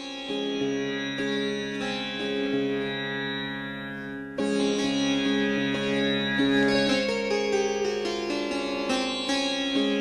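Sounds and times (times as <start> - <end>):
plucked string melody: 0.0 - 10.0.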